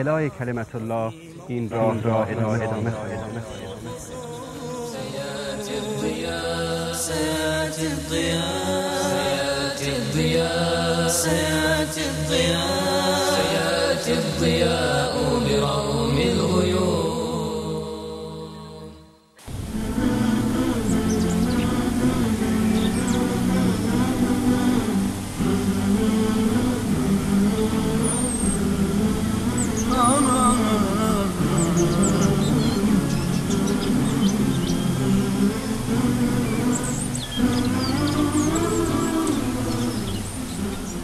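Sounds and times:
voice chanting slow melody: 0.0 - 41.0.

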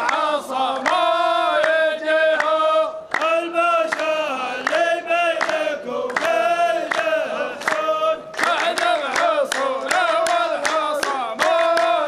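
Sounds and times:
hand claps: 0.0 - 12.0
men chanting in unison: 0.0 - 12.0.

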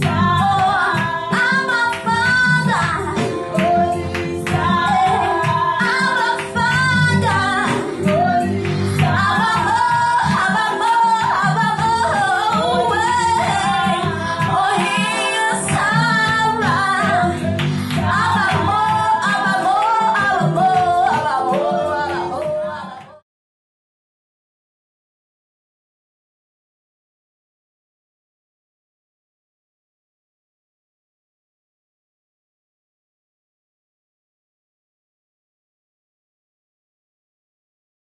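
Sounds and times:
electronic keyboard: 0.0 - 23.2
woman singing into a microphone: 0.0 - 23.2.

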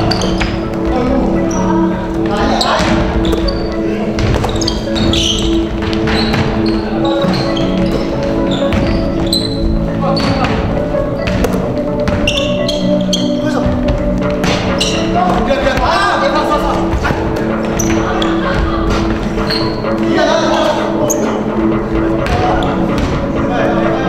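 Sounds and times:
voices: 0.0 - 13.9, 14.7 - 24.0
sneakers squeaking on hardwood: 0.0 - 23.4
music playing: 0.0 - 24.0
basketball dribbling: 2.7 - 15.1.

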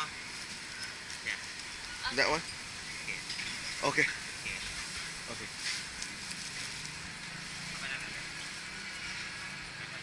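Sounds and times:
traffic hum: 0.0 - 10.0.

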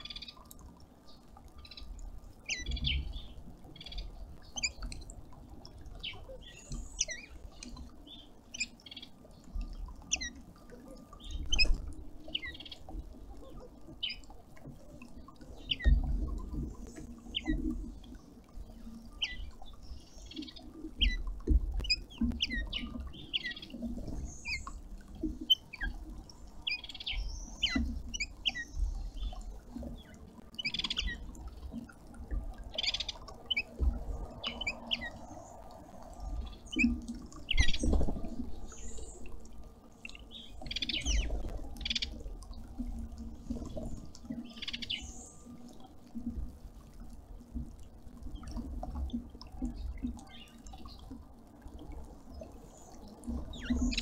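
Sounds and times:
small birds chirping: 0.0 - 4.9, 5.9 - 14.4, 15.1 - 24.8, 25.4 - 31.3, 32.7 - 33.8, 34.4 - 35.4, 36.4 - 39.3, 40.0 - 42.2, 44.2 - 45.5.

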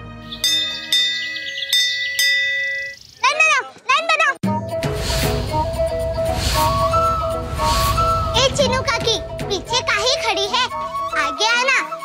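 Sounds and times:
metal chimes ringing: 0.4 - 3.1.

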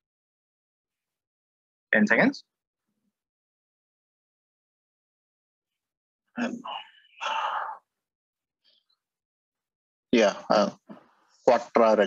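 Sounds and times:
person sighing: 6.4 - 7.8.

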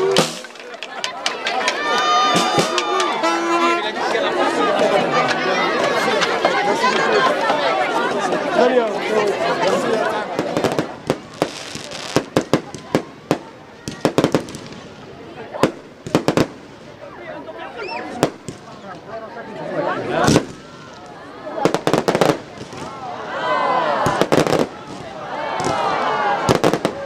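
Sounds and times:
fireworks bangs and crackles: 9.7 - 17.2, 18.1 - 19.2, 20.2 - 23.1, 24.0 - 27.0.

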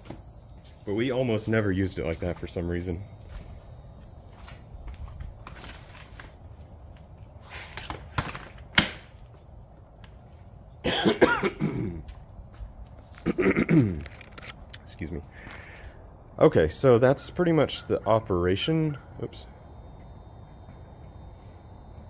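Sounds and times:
man coughing: 10.8 - 12.1, 13.2 - 14.0.

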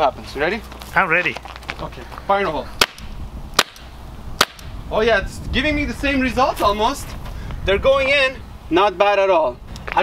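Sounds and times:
air pistol shots: 2.8 - 4.8.

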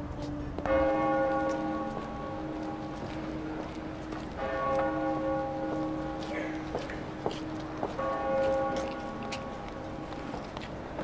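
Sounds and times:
church bell ringing: 0.0 - 10.4.

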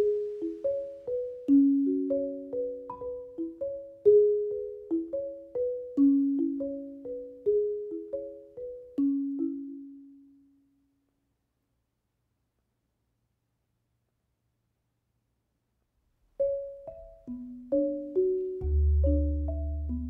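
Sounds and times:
marimba playing: 0.0 - 10.3, 16.4 - 20.0.

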